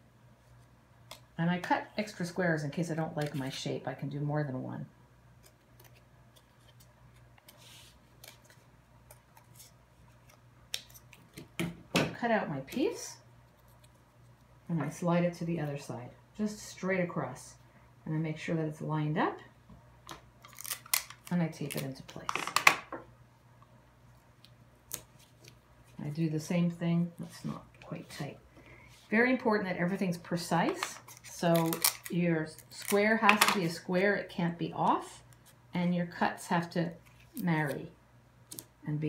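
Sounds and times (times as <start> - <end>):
cardboard and tape handling: 5.4 - 11.6, 20.1 - 22.7, 30.6 - 33.8.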